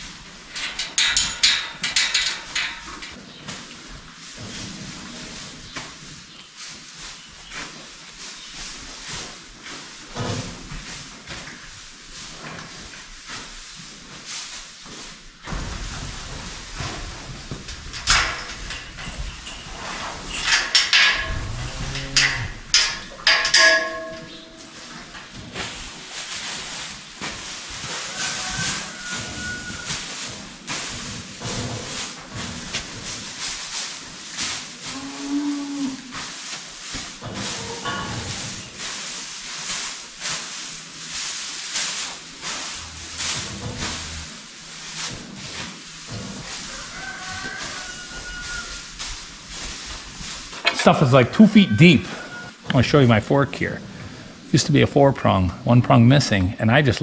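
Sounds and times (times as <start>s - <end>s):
cows mooing: 21.3s - 22.6s, 34.8s - 36.1s.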